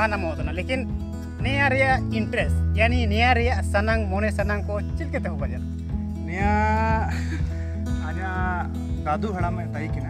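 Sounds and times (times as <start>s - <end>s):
music backing track with bass: 0.0s - 10.0s.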